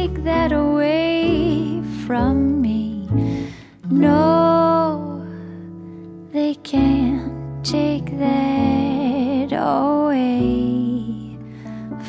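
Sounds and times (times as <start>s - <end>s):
soft guitar: 0.0s - 11.4s
soft piano: 0.0s - 12.0s.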